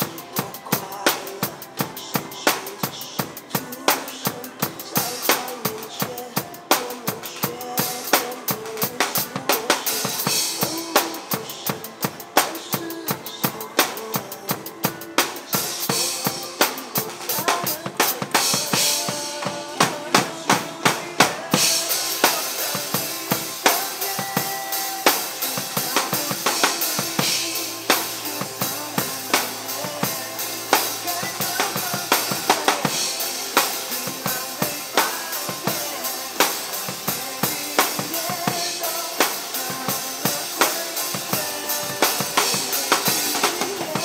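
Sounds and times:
acoustic drum kit playing: 0.0s - 44.0s
instrumental backing music: 0.0s - 44.0s.

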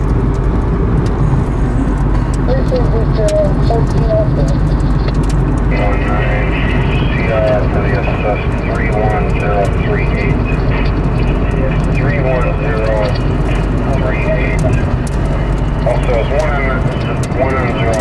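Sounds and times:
car engine and tyres drone: 0.0s - 18.0s
radio voice traffic: 1.1s - 18.0s.

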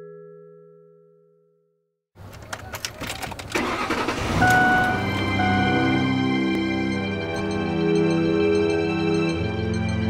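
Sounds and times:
car engine starting: 2.2s - 7.3s.

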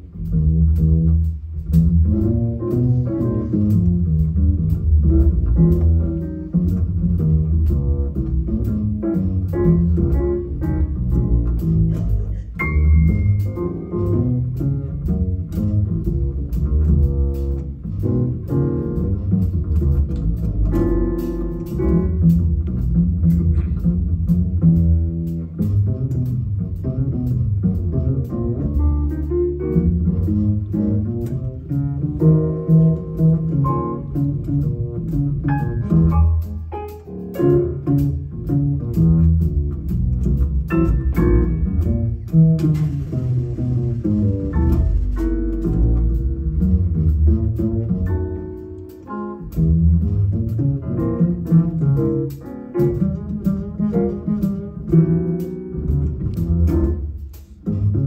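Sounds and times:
double bass played pizzicato: 0.0s - 58.0s
drums: 0.0s - 58.0s
light piano: 0.0s - 58.0s.

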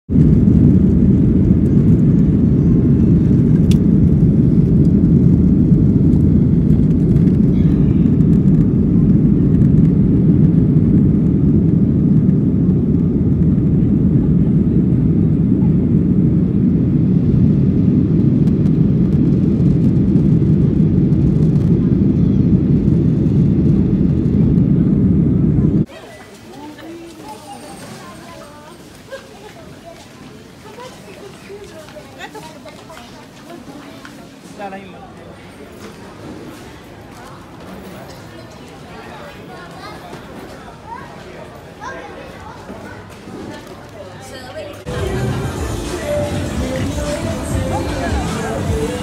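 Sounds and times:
aircraft cabin engine rumble: 0.1s - 25.9s, 44.8s - 49.0s.

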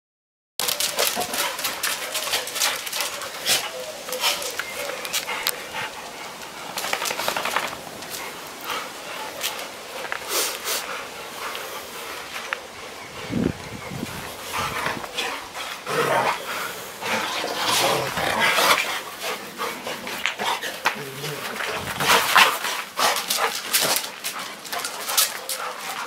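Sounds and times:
dog sounds: 0.6s - 26.0s
dogs scuffling: 0.6s - 26.0s.

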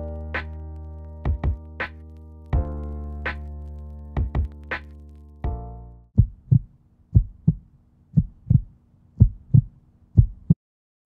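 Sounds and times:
heartbeat thumps: 1.3s - 1.7s, 2.6s - 3.4s, 4.2s - 4.6s, 6.2s - 10.6s.

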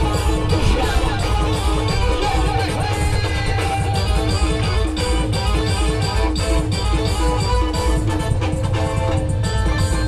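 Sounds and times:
heavy bass: 0.0s - 10.0s
plucked guitar-like lead: 0.0s - 10.0s
steady drum beat: 0.0s - 10.0s.

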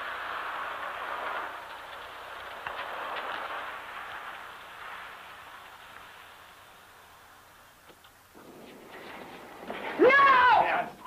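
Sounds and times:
tyre and road noise: 0.0s - 11.0s
faint clicks: 7.8s - 10.4s.

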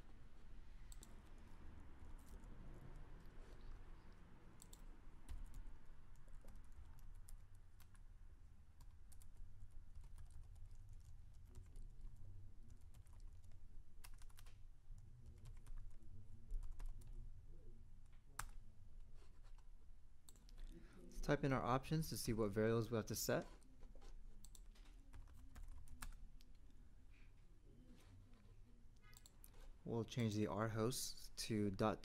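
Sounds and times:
computer keyboard typing: 0.8s - 8.0s, 8.8s - 14.6s, 15.2s - 17.2s, 18.4s - 18.6s, 19.2s - 20.7s, 23.5s - 26.6s, 29.0s - 29.7s.

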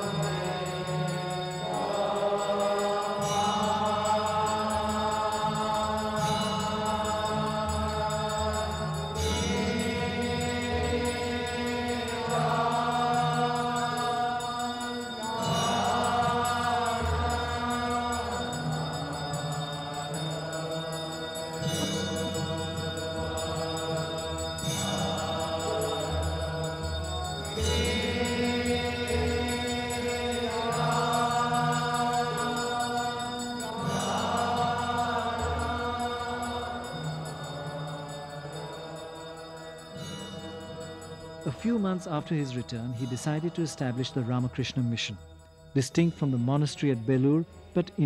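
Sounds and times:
group chanting a hymn: 0.0s - 45.1s
low sustained accompanying notes: 0.0s - 48.0s.

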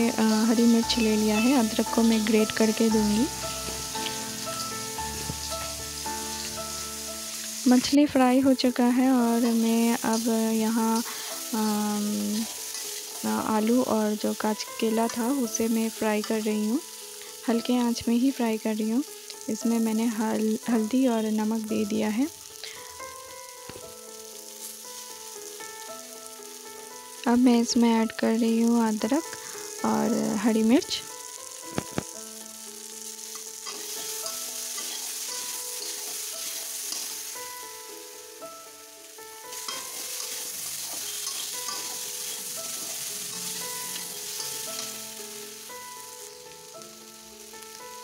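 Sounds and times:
oil sizzling in a frying pan: 0.0s - 48.0s
soft background music: 0.0s - 48.0s.

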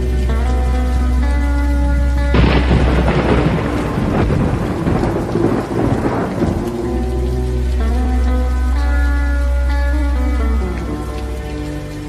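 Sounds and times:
rain: 0.0s - 12.0s
slowed lofi music: 0.0s - 12.0s
thunderclap: 2.3s - 6.9s.

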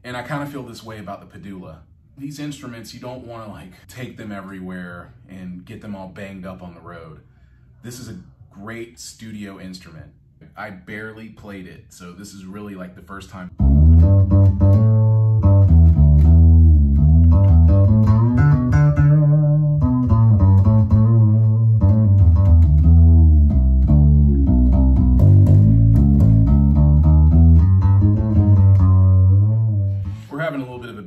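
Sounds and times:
fretless bass gliding notes: 13.5s - 30.6s.

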